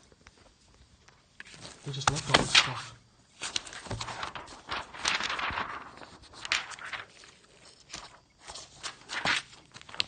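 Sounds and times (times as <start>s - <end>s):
paper rustling: 0.2s - 10.0s.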